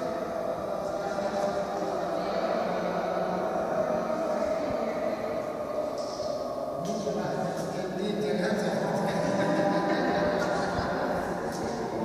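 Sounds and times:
murmur of many voices: 0.0 - 12.0.

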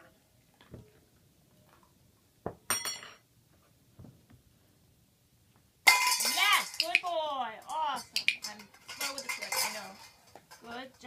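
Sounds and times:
metal dog bowls clanking: 5.9 - 7.0, 7.6 - 11.0.

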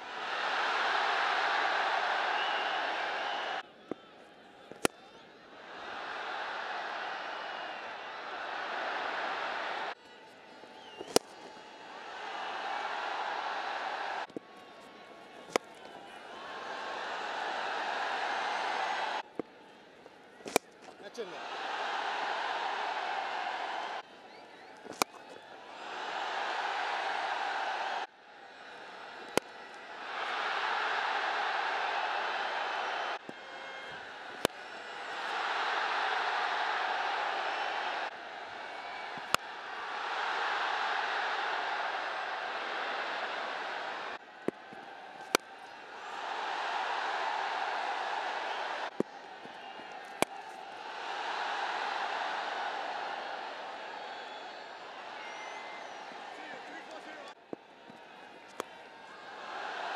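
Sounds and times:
stadium crowd cheering: 0.0 - 59.9
cricket bat striking ball: 4.7 - 4.9, 10.9 - 11.5, 15.4 - 16.0, 20.4 - 21.0, 24.8 - 25.2, 29.2 - 29.5, 44.4 - 45.7, 48.9 - 50.6.

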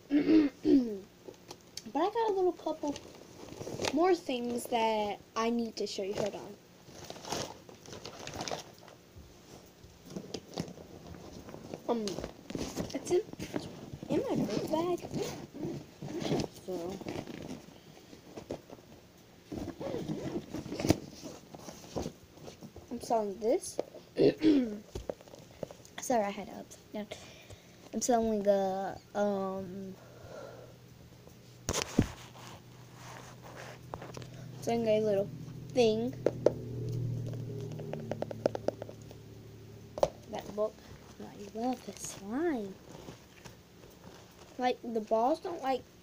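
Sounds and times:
low steady hum: 0.0 - 46.0
bag rustling: 19.5 - 22.6, 31.7 - 34.8.

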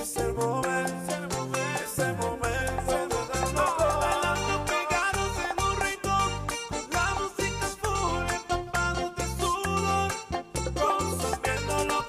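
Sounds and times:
salsa dance music: 0.0 - 12.0.

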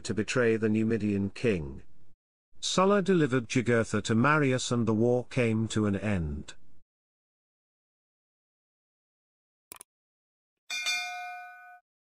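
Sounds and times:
notification bell ding: 10.7 - 11.8.

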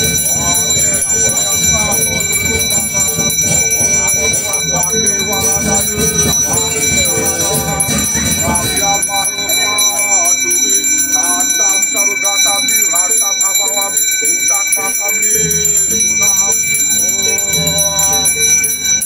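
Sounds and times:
voices chanting: 0.0 - 18.7
hand bell ringing: 0.0 - 19.0.

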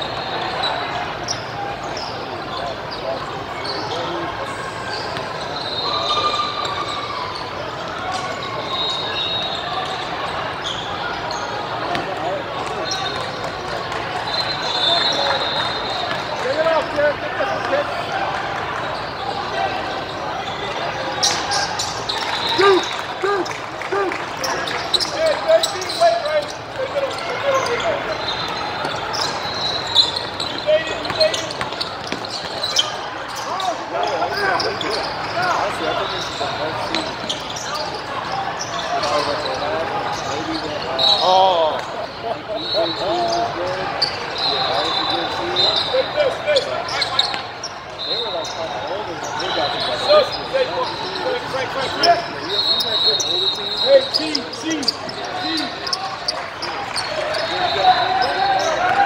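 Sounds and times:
sneakers squeaking: 0.0 - 59.0
basketball bouncing on court: 31.0 - 32.7.

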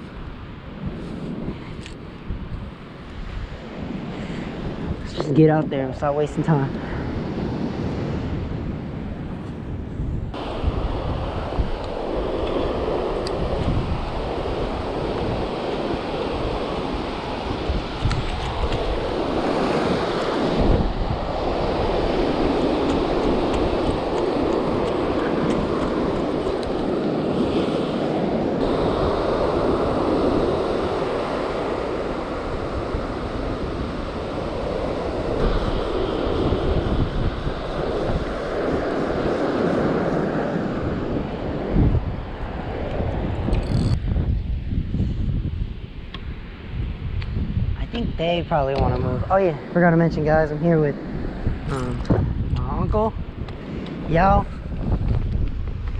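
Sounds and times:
ocean surf breaking on beach: 0.0 - 55.9
wind buffeting microphone: 0.0 - 55.9.

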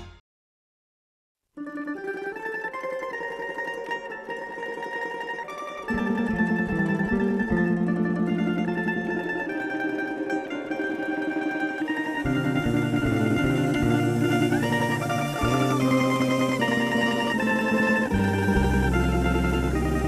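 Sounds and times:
plucked string band playing: 1.6 - 20.0
double bass: 5.9 - 20.0.

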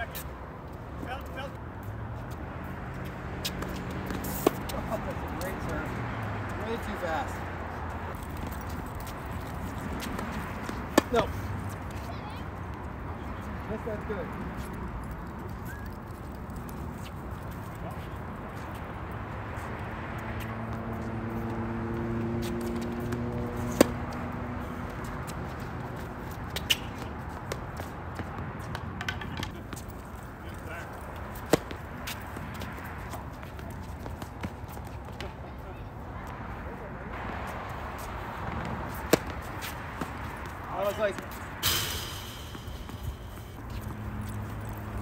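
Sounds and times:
tennis balls struck by rackets: 3.0 - 5.9, 8.1 - 12.1, 20.4 - 35.4, 38.0 - 45.0.

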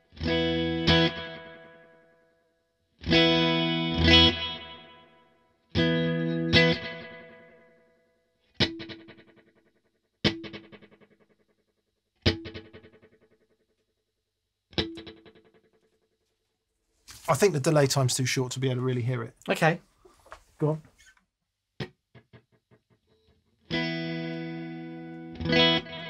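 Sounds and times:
electric guitar chords with echo: 0.0 - 2.2, 3.0 - 8.0, 8.6 - 9.6, 10.2 - 11.1, 12.2 - 13.3, 14.7 - 15.6, 22.1 - 26.0.

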